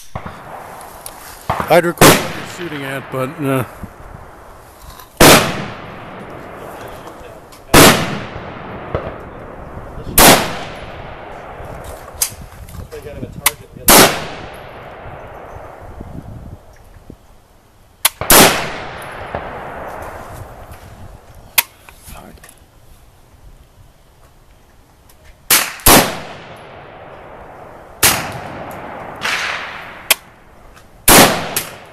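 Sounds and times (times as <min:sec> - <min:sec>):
rifle shots with echo: 0:00.0 - 0:00.8, 0:01.5 - 0:03.8, 0:05.2 - 0:11.8, 0:13.9 - 0:15.8, 0:18.1 - 0:20.2, 0:25.5 - 0:30.4, 0:31.1 - 0:31.9
sharp quieter cracks: 0:25.5 - 0:30.4, 0:31.1 - 0:31.9.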